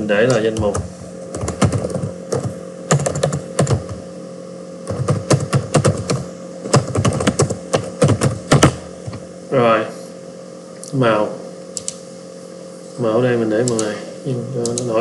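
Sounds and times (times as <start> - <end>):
typing on computer keyboard: 0.2 - 4.0, 4.9 - 8.8.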